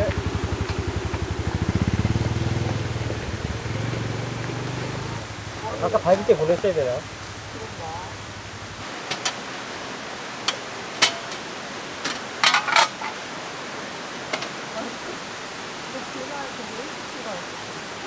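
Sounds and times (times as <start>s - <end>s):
steady rushing noise: 0.0s - 18.0s.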